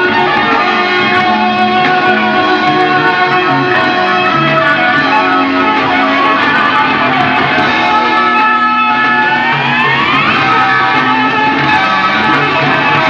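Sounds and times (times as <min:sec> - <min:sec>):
rock band playing live: 0:00.0 - 0:13.0.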